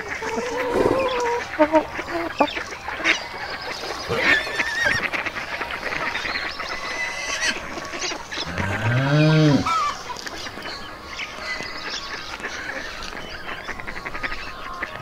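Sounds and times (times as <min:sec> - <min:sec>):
bird calls chirping: 0:00.0 - 0:15.0
water buffalo mooing: 0:08.4 - 0:09.8.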